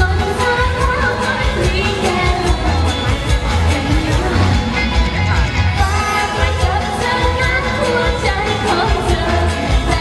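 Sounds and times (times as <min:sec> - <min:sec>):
woman singing into a microphone: 0:00.0 - 0:04.9, 0:05.8 - 0:10.0
amplified band with bass beat: 0:00.0 - 0:10.0.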